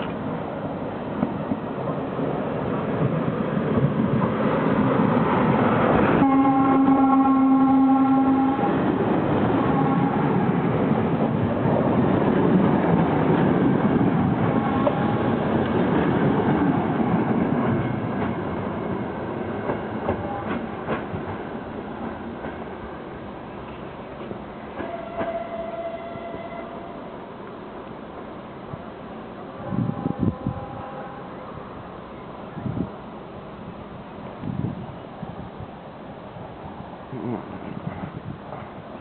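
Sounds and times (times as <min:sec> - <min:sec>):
train rolling on rails: 0:00.0 - 0:39.0
train horn: 0:06.2 - 0:08.9, 0:09.5 - 0:10.4, 0:14.5 - 0:15.5, 0:20.1 - 0:20.7, 0:24.8 - 0:27.1, 0:29.5 - 0:31.6.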